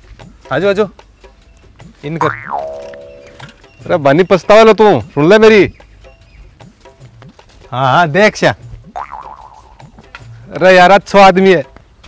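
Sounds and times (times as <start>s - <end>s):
cartoon pitch sweep: 2.2s - 3.4s
ringing note: 2.2s - 3.5s.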